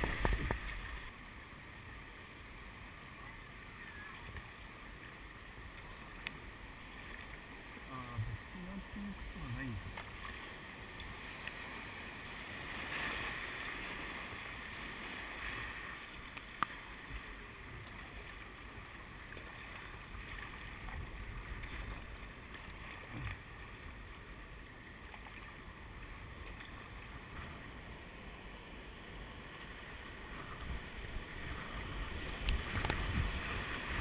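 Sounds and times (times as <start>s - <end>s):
river water rushing: 0.0s - 34.0s.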